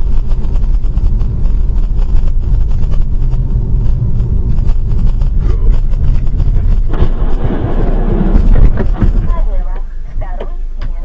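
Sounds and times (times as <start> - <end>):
car driving road and engine noise: 0.0 - 11.0.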